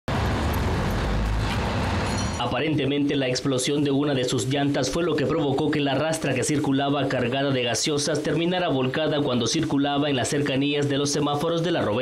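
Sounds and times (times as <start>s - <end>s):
engine and traffic rumble: 0.1s - 4.2s.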